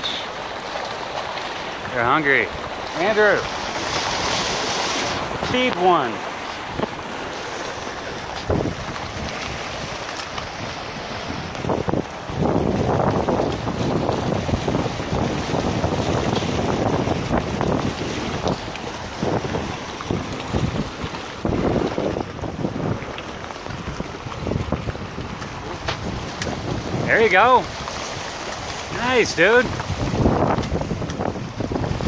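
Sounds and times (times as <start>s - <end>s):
turbulent water rushing: 0.0s - 32.0s
wind buffeting microphone: 1.8s - 32.0s.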